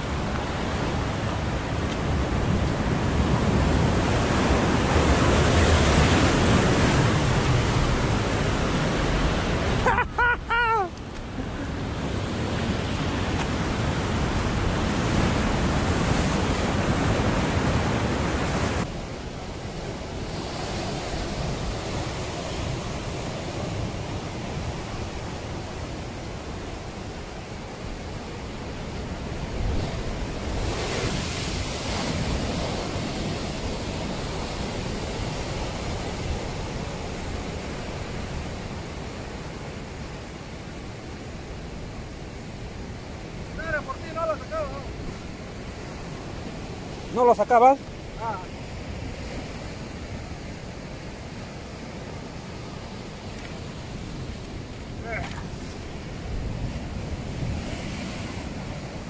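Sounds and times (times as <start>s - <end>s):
waves breaking on rocky shore: 0.0s - 59.0s.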